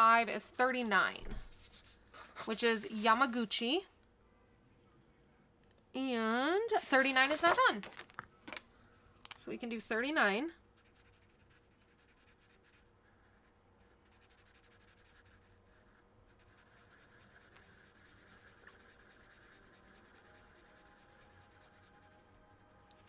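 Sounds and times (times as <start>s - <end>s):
marker scratching on paper: 0.7s - 3.4s, 6.8s - 7.7s, 9.6s - 22.2s.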